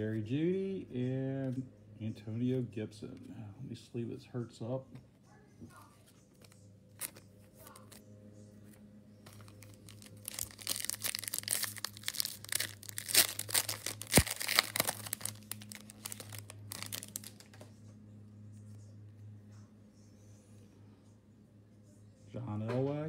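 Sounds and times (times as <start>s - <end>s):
low steady hum: 0.0s - 23.0s
plastic sleeve crinkling: 6.3s - 8.0s, 9.2s - 17.6s.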